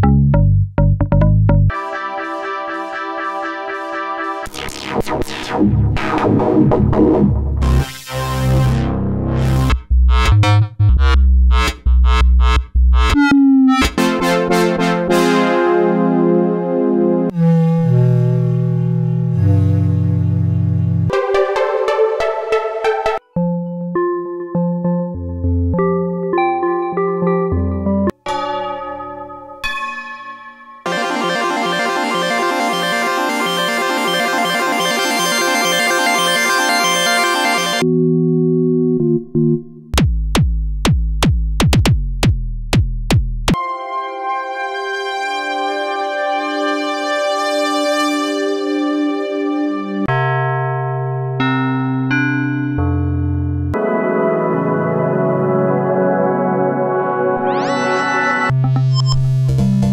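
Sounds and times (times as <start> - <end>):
bass-heavy synth chord stabs: 0.0 - 21.1, 30.9 - 40.0, 52.1 - 59.9
hissy synthesizer pad chord: 1.7 - 5.0, 30.9 - 37.8, 53.8 - 58.5.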